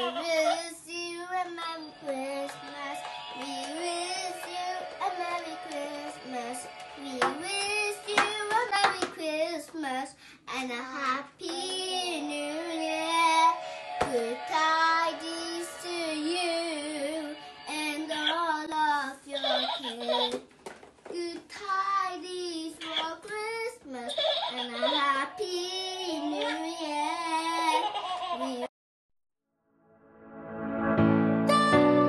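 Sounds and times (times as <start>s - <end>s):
music playing: 0.0s - 9.0s, 11.5s - 18.7s, 30.0s - 32.0s
girl singing into microphone: 0.0s - 20.4s, 21.1s - 28.7s.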